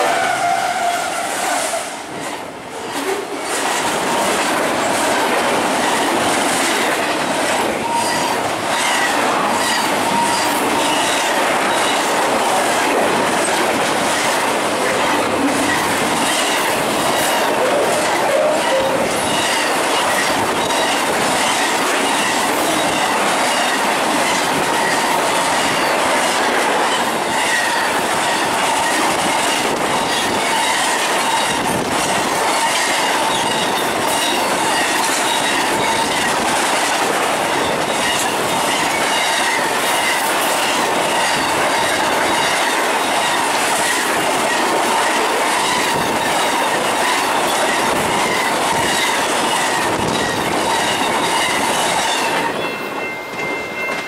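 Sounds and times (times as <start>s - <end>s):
train wheels rushing on rail: 0.0s - 54.0s
thin squealing tones: 7.8s - 11.2s, 17.4s - 21.1s.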